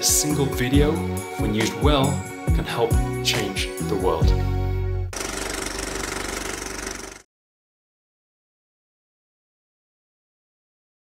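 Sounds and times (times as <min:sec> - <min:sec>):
fast mechanical rattle: 0:05.1 - 0:07.3.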